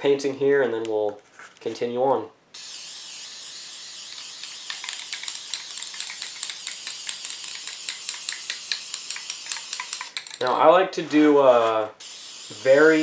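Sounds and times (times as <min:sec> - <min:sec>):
spray paint can hissing: 0:02.6 - 0:10.5, 0:12.0 - 0:13.0.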